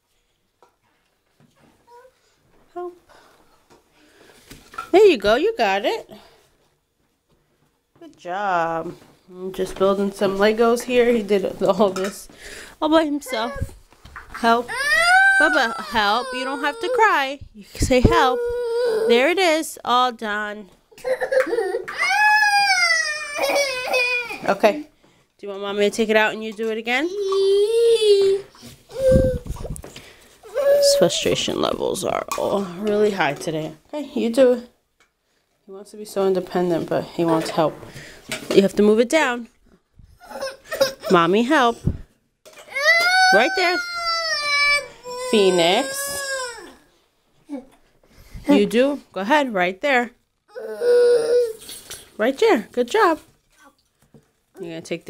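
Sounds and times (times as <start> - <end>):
toddler crying: 14.7 - 17.1, 18.1 - 19.2, 21.0 - 24.4, 27.1 - 29.5, 30.4 - 31.2, 42.7 - 46.8, 50.5 - 51.6
young child vocalizing: 27.1 - 29.7.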